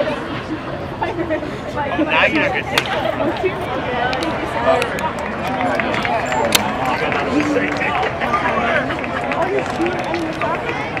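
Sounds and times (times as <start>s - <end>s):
crowd murmur: 0.0s - 11.0s
people talking and laughing: 0.0s - 11.0s.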